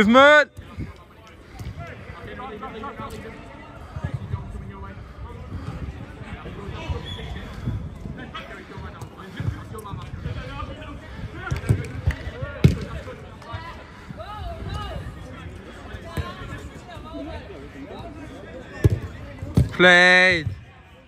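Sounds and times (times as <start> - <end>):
football being kicked: 12.6 - 12.9.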